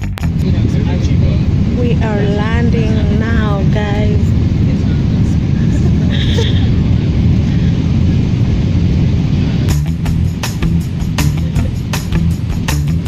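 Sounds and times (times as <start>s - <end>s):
airliner cabin rumble: 0.0s - 13.0s.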